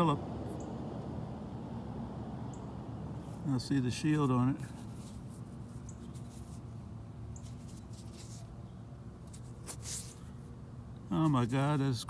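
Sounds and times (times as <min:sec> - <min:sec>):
low steady background hum: 0:00.0 - 0:12.0
scrape: 0:07.4 - 0:08.5, 0:09.2 - 0:10.3.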